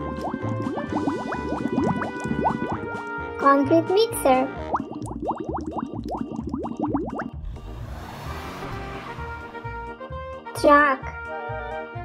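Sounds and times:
cartoon underwater bubbling: 0.0s - 3.0s, 4.5s - 7.7s.

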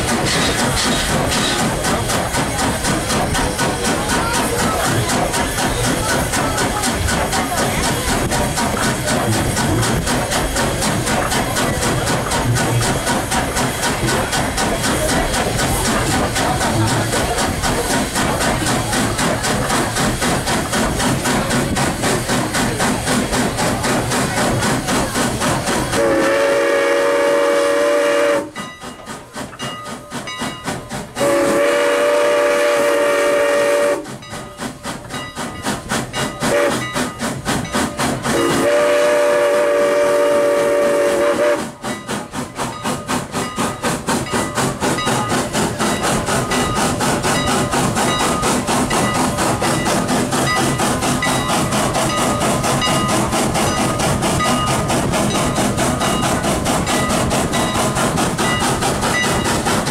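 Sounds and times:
steam locomotive chuffing: 0.0s - 59.9s
steam whistle blasts: 26.0s - 28.6s, 31.2s - 34.1s, 36.5s - 36.8s, 38.3s - 41.8s.

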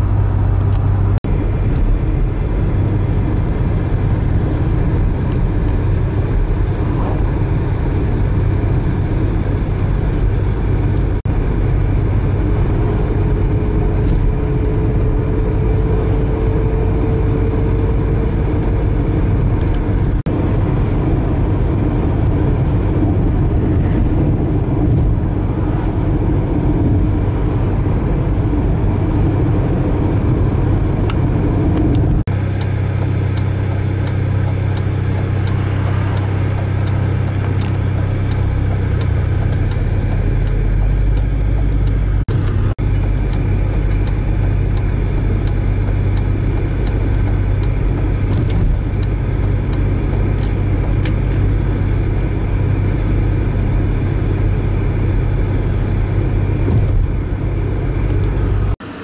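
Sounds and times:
car engine and road drone: 0.0s - 59.0s.

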